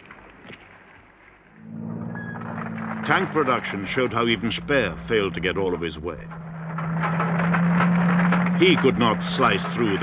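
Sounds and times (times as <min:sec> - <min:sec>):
tank tracks clattering: 0:00.0 - 0:10.0
constant low hum: 0:01.5 - 0:10.0
tank engine running: 0:01.5 - 0:10.0.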